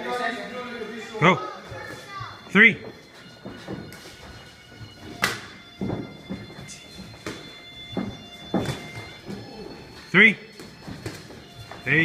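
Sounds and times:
faint background music: 0:00.0 - 0:12.0
feet moving on gym floor: 0:01.5 - 0:12.0.

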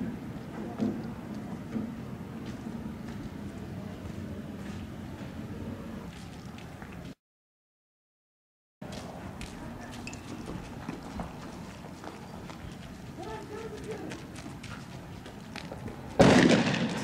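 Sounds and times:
voices: 0:00.0 - 0:07.2, 0:09.1 - 0:16.2
loud bang: 0:16.2 - 0:17.0.

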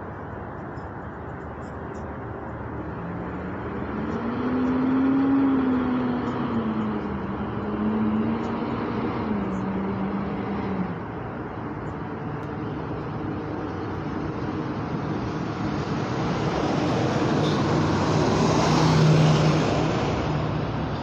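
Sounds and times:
vehicle road noise rush: 0:00.0 - 0:21.0.

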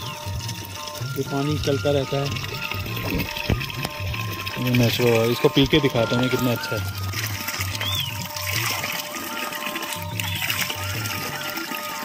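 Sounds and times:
background music with steady beat: 0:00.0 - 0:12.0
water pouring onto rocks: 0:00.0 - 0:12.0.

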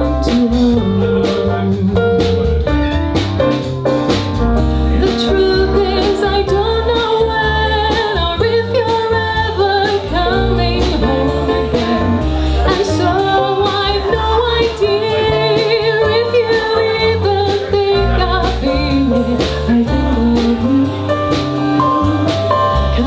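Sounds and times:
woman singing into a microphone: 0:00.0 - 0:02.0, 0:04.8 - 0:23.0
drum kit beat: 0:00.0 - 0:23.0
electric bass: 0:00.0 - 0:23.0
keyboard: 0:00.0 - 0:23.0.

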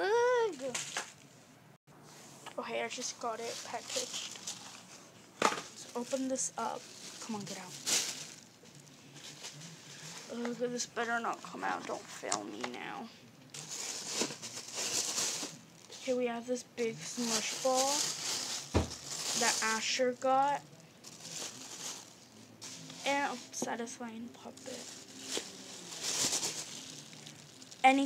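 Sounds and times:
plastic bag rustling: 0:02.6 - 0:12.6, 0:13.5 - 0:28.0.

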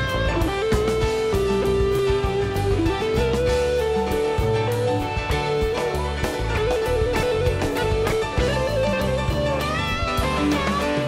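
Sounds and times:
drum hits: 0:00.0 - 0:11.0
rock band playing instrumental: 0:00.0 - 0:11.0.

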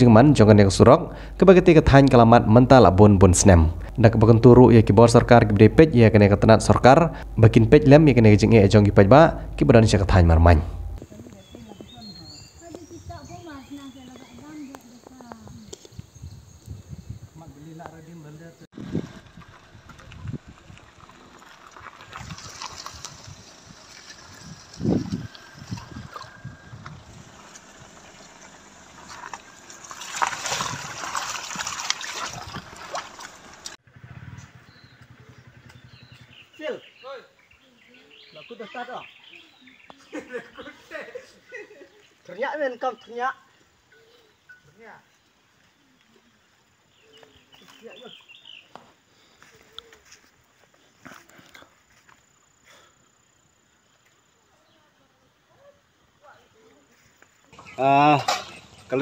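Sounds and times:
faint outdoor ambience: 0:00.0 - 0:59.0
car moving through mud: 0:18.8 - 0:33.8.

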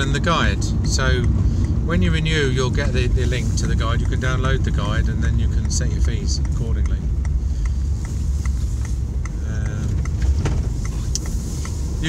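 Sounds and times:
engine and road rumble: 0:00.0 - 0:12.0
faint regular ticking: 0:00.0 - 0:12.0.

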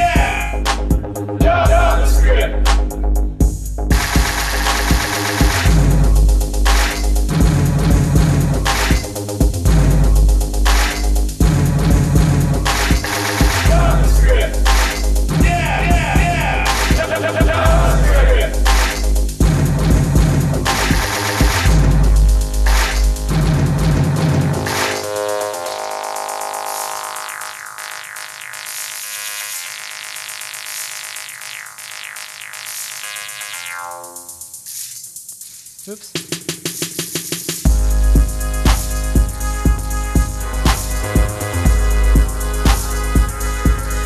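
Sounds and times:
deep bass: 0:00.0 - 0:25.6, 0:37.7 - 0:44.0
electronic music with drums: 0:00.0 - 0:44.0
held synth tones: 0:24.6 - 0:34.6.

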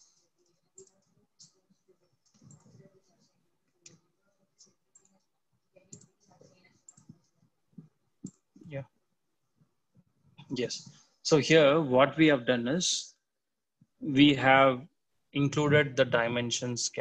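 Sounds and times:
computer mouse clicks: 0:05.9 - 0:06.2, 0:08.2 - 0:08.6.

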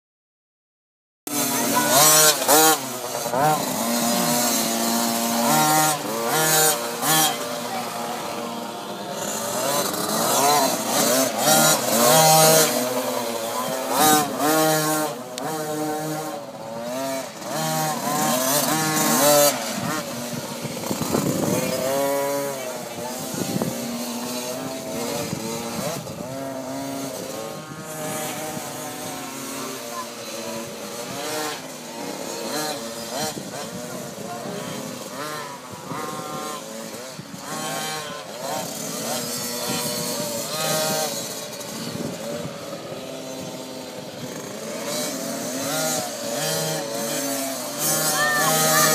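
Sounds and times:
dirt bike engines revving: 0:01.3 - 0:48.9.

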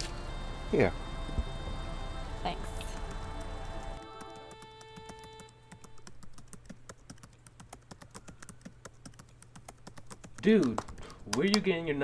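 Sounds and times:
typing on laptop keyboard: 0:02.8 - 0:11.7.

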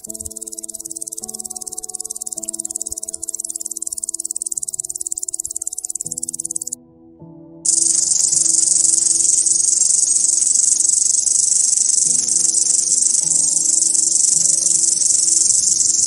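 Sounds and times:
cricket trilling: 0:00.0 - 0:06.8, 0:07.7 - 0:16.0
soft background music: 0:00.0 - 0:16.0.

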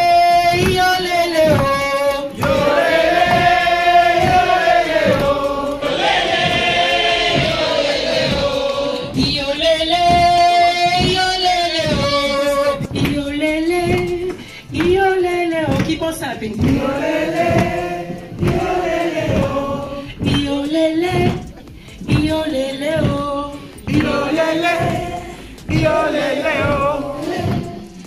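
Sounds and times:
woman singing into microphone: 0:00.0 - 0:05.8, 0:08.3 - 0:28.0
group singing together: 0:00.0 - 0:28.0
steady beat: 0:00.0 - 0:28.0.

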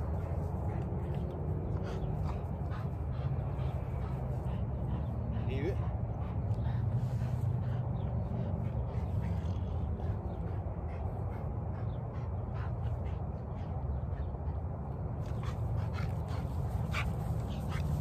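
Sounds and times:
dog panting: 0:00.0 - 0:18.0
steady low rumble: 0:00.0 - 0:18.0.

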